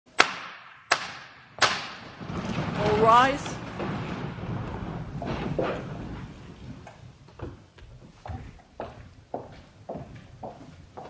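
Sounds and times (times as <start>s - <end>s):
footsteps on hard floor: 3.8s - 11.0s.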